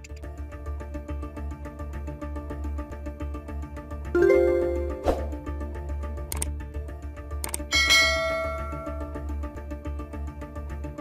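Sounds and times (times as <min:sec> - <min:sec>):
background music with steady beat: 0:00.0 - 0:11.0
notification bell chime: 0:04.2 - 0:05.4.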